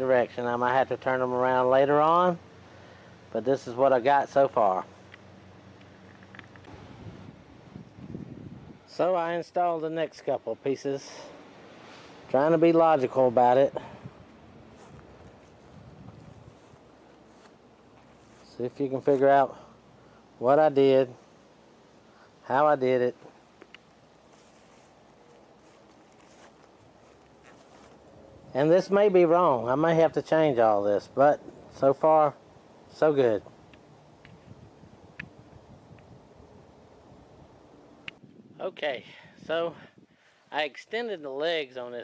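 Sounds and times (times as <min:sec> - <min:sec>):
low steady hum: 0:00.0 - 0:41.7
wind buffeting microphone: 0:06.6 - 0:08.9, 0:13.7 - 0:17.0, 0:34.2 - 0:38.6.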